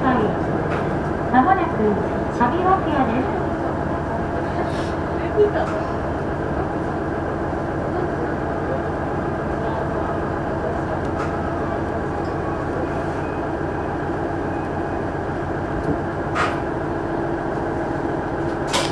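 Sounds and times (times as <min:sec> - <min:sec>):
diesel railcar running drone: 0:00.0 - 0:18.9.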